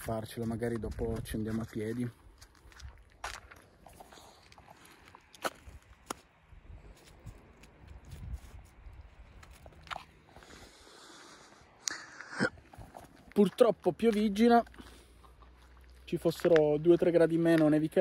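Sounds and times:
footsteps crunching in snow: 0.0 - 11.8, 12.6 - 18.0
wind rumble on microphone: 5.6 - 9.8.

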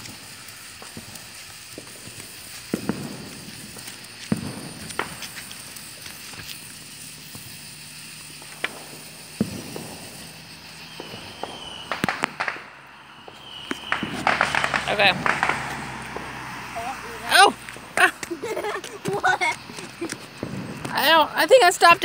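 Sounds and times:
sharp pops and crackles: 0.0 - 22.0
sparkler fizzing: 0.0 - 22.0.

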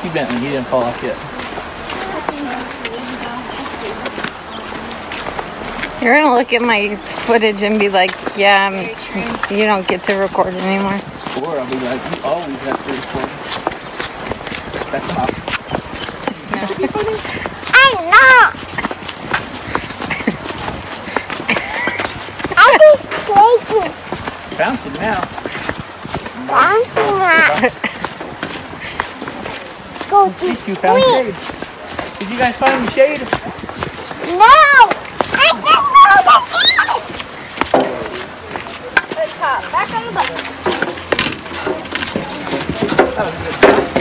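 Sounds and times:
faint voices: 0.0 - 44.0
footsteps on dirt trail: 0.0 - 44.0
background voices: 26.3 - 44.0.

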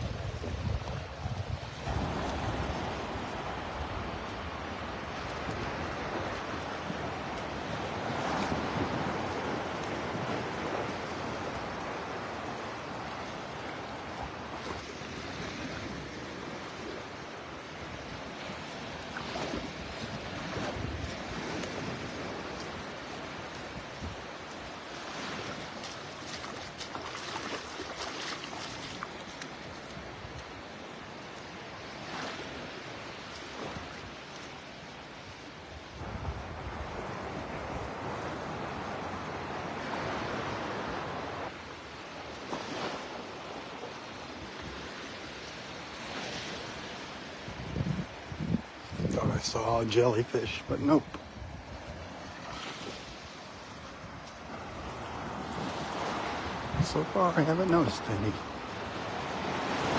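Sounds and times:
wind buffeting microphone: 0.0 - 4.6, 47.4 - 49.9
small waves breaking on beach: 0.0 - 59.9.

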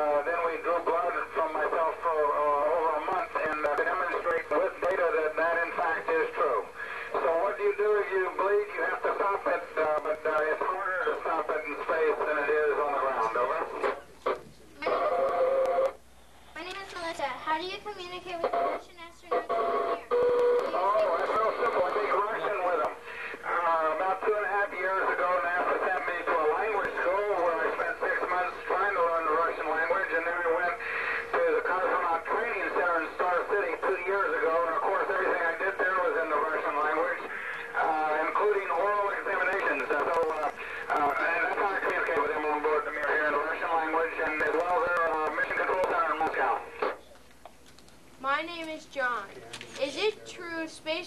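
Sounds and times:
man talking over radio: 0.0 - 16.0, 18.4 - 47.0.

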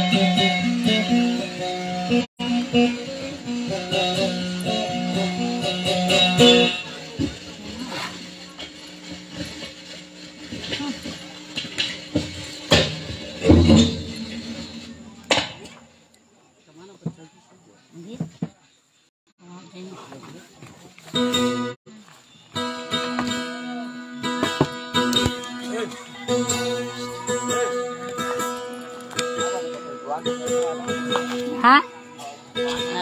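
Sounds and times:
plucked boat lute melody: 0.0 - 15.9, 21.0 - 21.8, 22.6 - 33.0.

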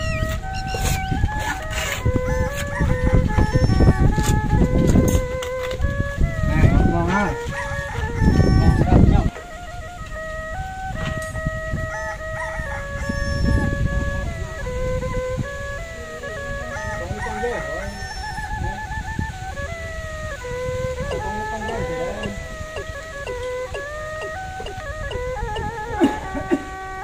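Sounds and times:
traditional wind instrument melody: 0.0 - 27.0.

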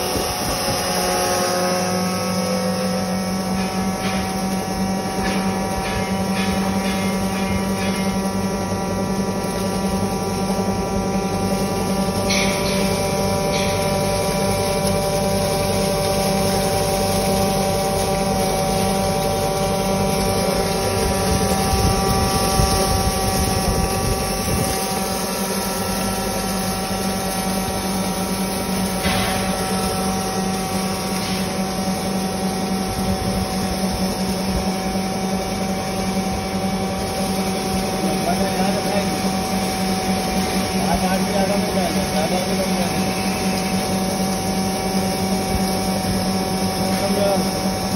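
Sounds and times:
electric flour mill humming: 0.0 - 47.9.

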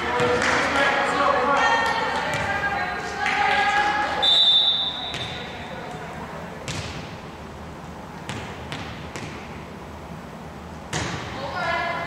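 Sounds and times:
referee whistle: 4.2 - 5.4
ball bouncing on wooden floor: 6.6 - 7.1, 8.3 - 9.4.

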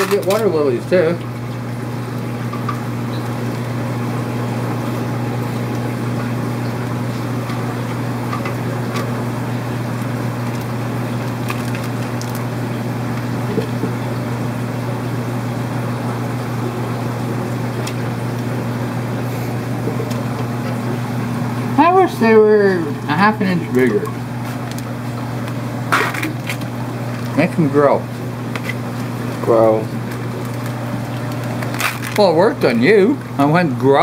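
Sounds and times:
plastic bags clicking: 0.0 - 0.5, 11.3 - 12.4, 30.4 - 32.3
aquarium pumps humming: 0.0 - 34.0.

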